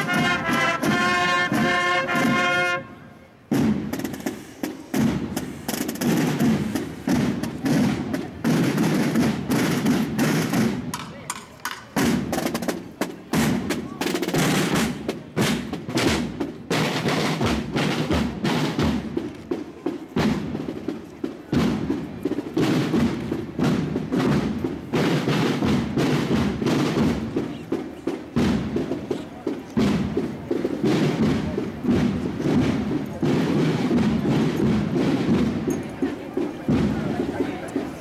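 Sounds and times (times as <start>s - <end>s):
marching snare drums cadence: 0.0s - 38.0s.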